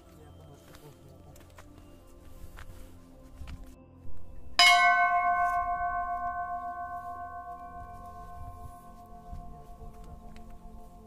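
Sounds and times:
temple bell ringing: 4.4 - 11.0.

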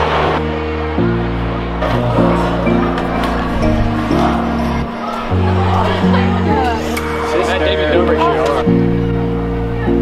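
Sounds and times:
music with held bass notes: 0.1 - 10.0.

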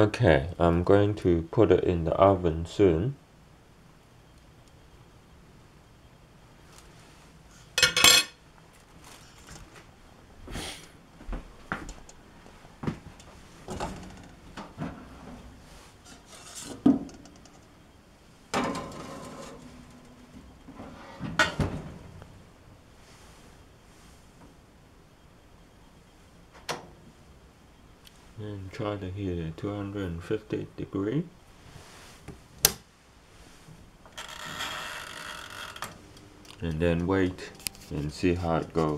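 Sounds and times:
metal bowl clattering: 7.8 - 8.4
oven rack and door clanks: 18.6 - 20.2, 20.8 - 22.2.

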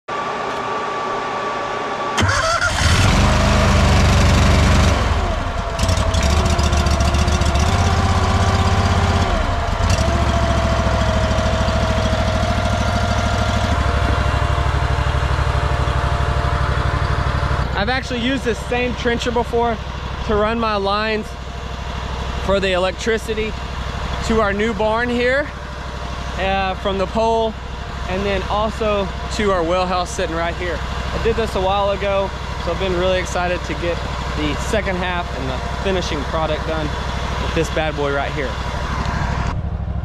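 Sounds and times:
gas engine running: 0.5 - 40.0
engine cranking: 2.2 - 18.6.

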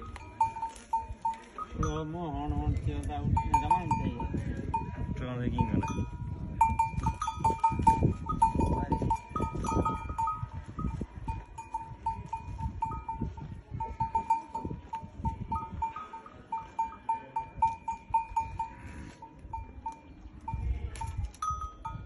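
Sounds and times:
livestock neck bells clinking: 0.0 - 22.0.

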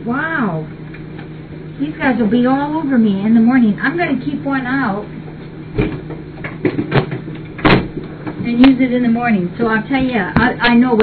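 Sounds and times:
objects knocking and clunking: 5.7 - 8.5.

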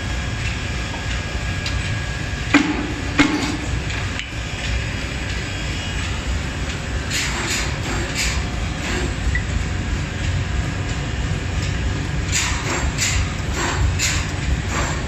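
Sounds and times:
machinery low rumble: 0.0 - 15.0.

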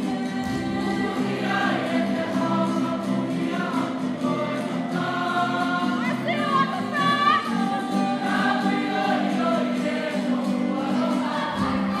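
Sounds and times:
group singing in harmony: 0.0 - 12.0.

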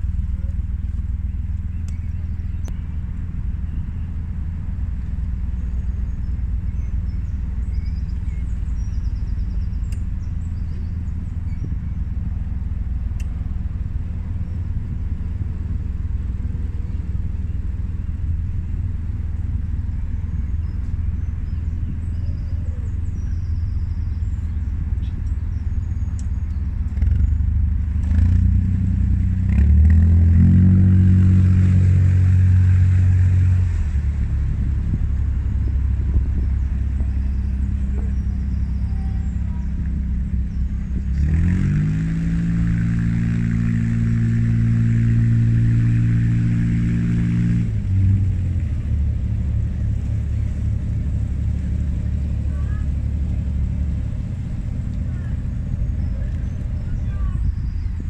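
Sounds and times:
diesel engine revving: 0.0 - 58.0.

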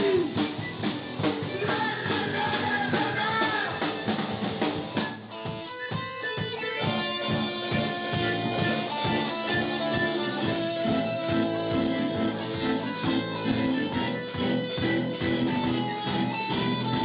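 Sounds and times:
person singing: 0.0 - 0.4, 1.4 - 4.0, 5.8 - 15.0
drum beat: 0.0 - 17.0
electric guitar: 0.0 - 17.0.

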